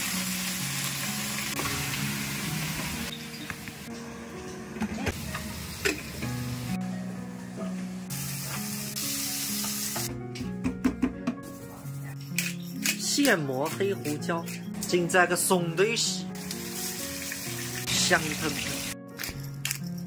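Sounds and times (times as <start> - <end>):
food sizzling in hot oil: 0.0 - 3.9, 8.1 - 10.1, 16.3 - 19.0
utensils clicking: 12.2 - 15.0.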